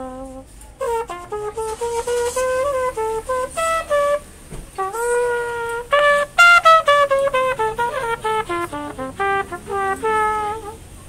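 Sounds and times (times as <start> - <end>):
trumpet playing: 0.0 - 11.0.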